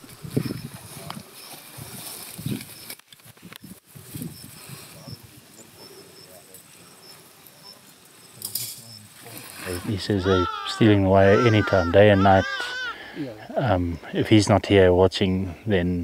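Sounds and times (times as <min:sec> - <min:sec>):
high insect chirp: 0:03.6 - 0:13.0
faint voices murmuring: 0:04.5 - 0:14.4.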